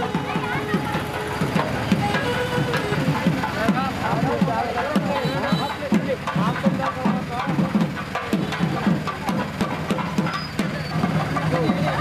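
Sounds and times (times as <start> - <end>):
procession music: 0.0 - 4.2
crowd voices talking: 0.0 - 12.0.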